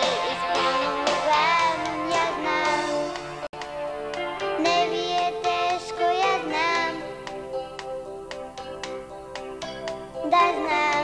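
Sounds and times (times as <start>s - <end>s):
girl singing into a microphone: 0.0s - 3.2s, 4.5s - 7.2s, 10.2s - 11.0s
band accompaniment: 0.0s - 4.8s.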